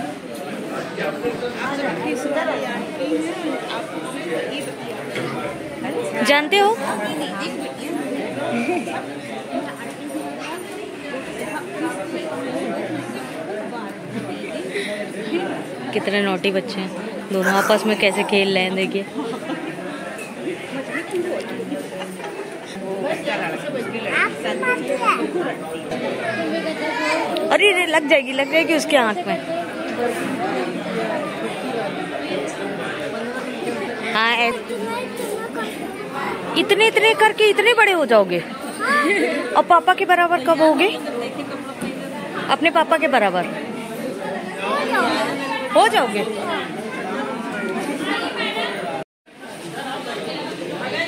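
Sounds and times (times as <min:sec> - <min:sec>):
background chatter of people: 0:00.0 - 0:51.0.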